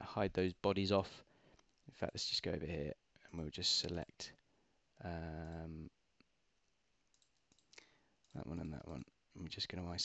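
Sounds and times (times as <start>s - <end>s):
computer mouse clicks: 7.0s - 8.4s.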